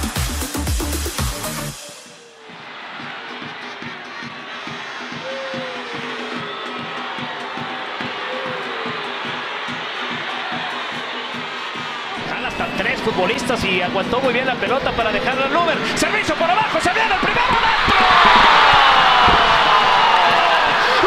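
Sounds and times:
stadium crowd noise: 1.6 - 21.0
crowd shouts: 1.8 - 21.0.

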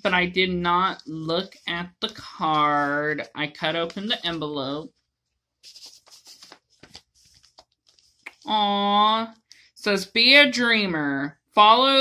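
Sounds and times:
paper rustling and crinkling: 0.8 - 8.5.

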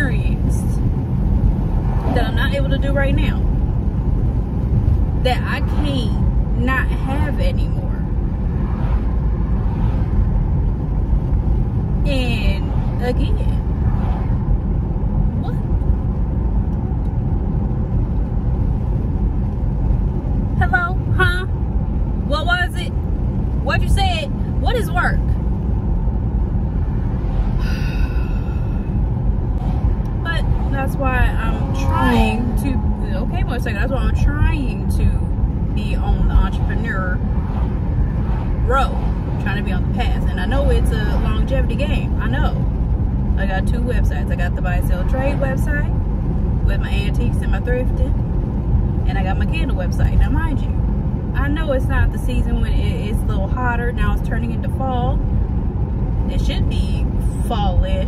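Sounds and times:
road and engine noise in car: 0.0 - 58.0.

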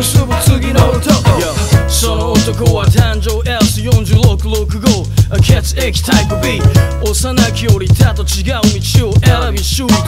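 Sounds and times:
drum beat: 0.0 - 10.0
person rapping: 0.0 - 10.0.

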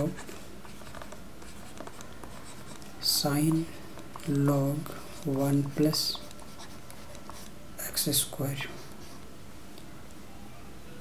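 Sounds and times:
stylus scratching on tablet: 0.0 - 7.6
faint low hum: 0.0 - 11.0.

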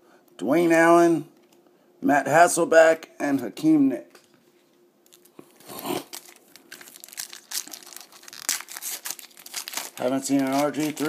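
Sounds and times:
foil wrapper crinkling and tearing: 5.1 - 11.0.

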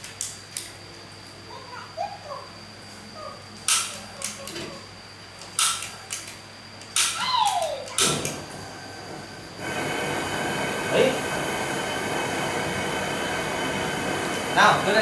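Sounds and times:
gas burner hissing: 3.7 - 15.0.

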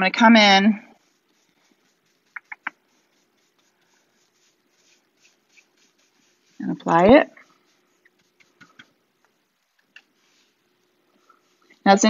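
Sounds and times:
paintbrush strokes on wood: 0.0 - 12.0.

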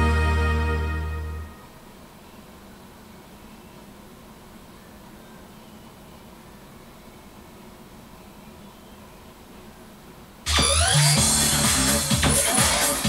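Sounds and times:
karaoke scoring music: 0.0 - 1.7, 10.5 - 13.0
faint hum: 0.0 - 13.0.

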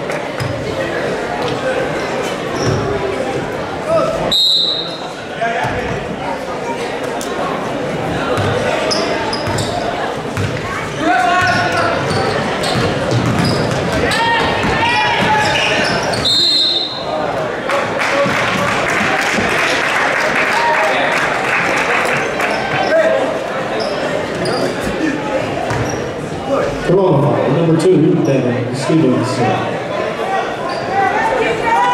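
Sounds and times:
crowd noise: 0.0 - 31.9
sneakers squeaking: 0.4 - 0.8, 1.4 - 3.0, 8.3 - 17.1, 22.2 - 26.3, 30.6 - 31.2
referee's whistle: 4.3 - 5.1, 15.4 - 17.1
basketball dribbling on wooden floor: 12.7 - 14.0.

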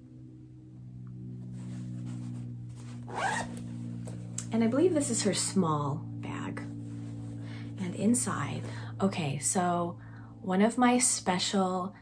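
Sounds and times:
zipper being pulled open: 1.5 - 4.0.

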